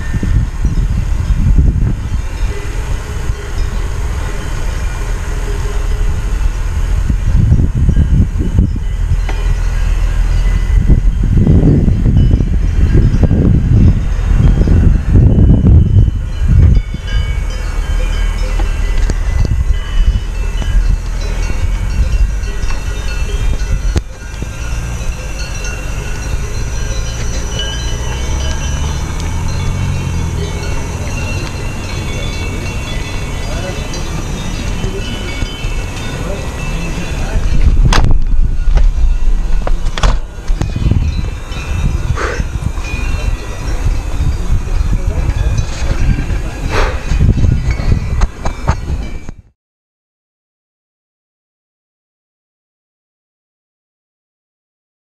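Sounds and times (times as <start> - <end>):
wind buffeting microphone: 0.0 - 49.6.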